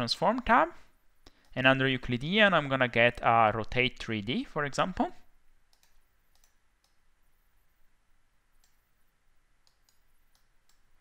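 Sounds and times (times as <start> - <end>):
computer mouse clicks: 1.2 - 1.6, 5.7 - 7.0, 8.6 - 8.8, 9.6 - 10.9.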